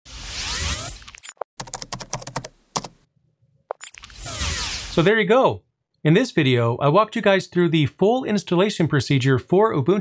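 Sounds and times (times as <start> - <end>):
keyboard typing clicks: 1.1 - 3.0.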